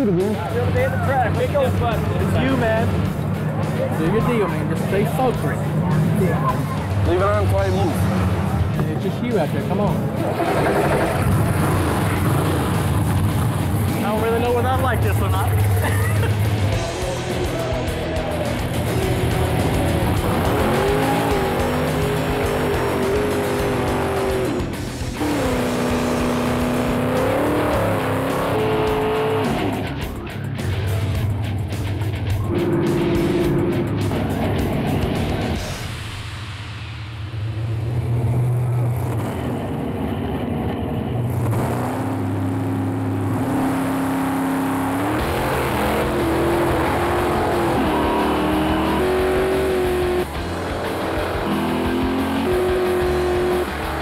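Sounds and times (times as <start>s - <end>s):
drag car engines revving: 0.0s - 36.3s, 37.2s - 54.0s
background music: 0.0s - 38.3s, 41.4s - 54.0s.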